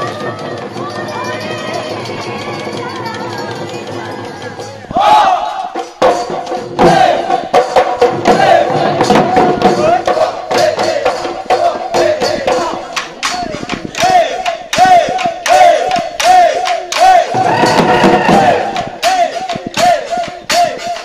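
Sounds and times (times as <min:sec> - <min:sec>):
dhol drums beaten fast: 0:00.0 - 0:21.0
men singing a chant: 0:06.7 - 0:21.0.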